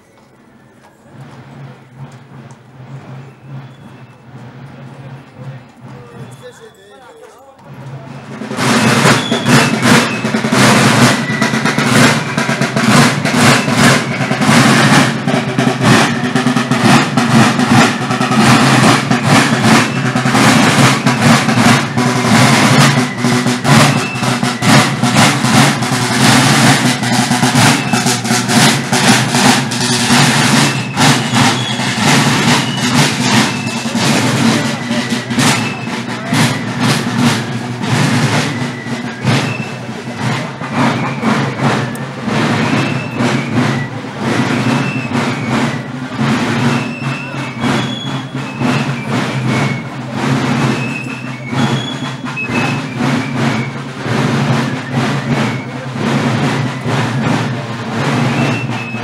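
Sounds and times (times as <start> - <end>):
marching drums playing: 1.1 - 6.6, 7.7 - 59.0.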